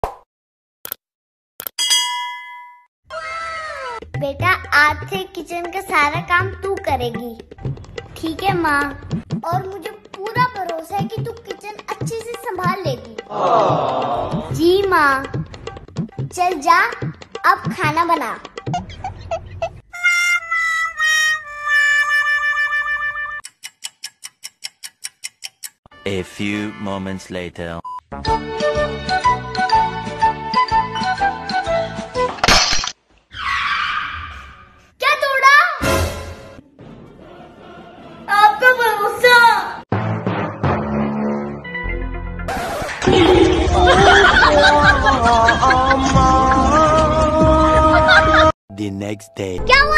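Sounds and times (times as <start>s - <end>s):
bell-like notification ding: 1.8s - 2.9s
clock ticking: 4.5s - 13.3s, 23.4s - 25.8s.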